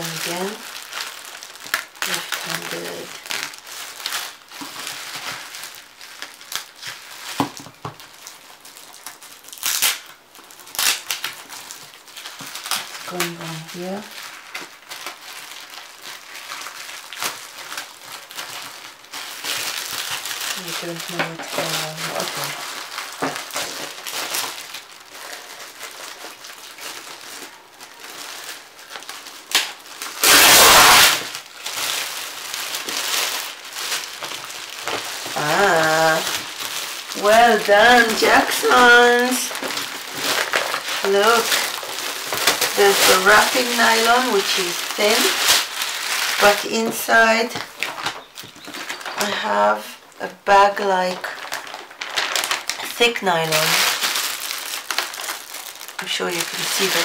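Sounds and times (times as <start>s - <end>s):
loud plastic film crackling: 0.0s - 57.0s
plastic film crinkling: 0.0s - 57.0s.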